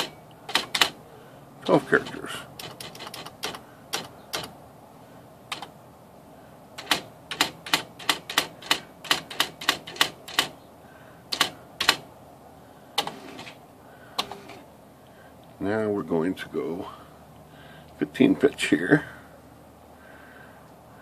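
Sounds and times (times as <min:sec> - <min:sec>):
typewriter clacking: 0:00.0 - 0:01.0, 0:01.6 - 0:04.5, 0:05.5 - 0:05.7, 0:06.8 - 0:10.5, 0:11.3 - 0:12.0.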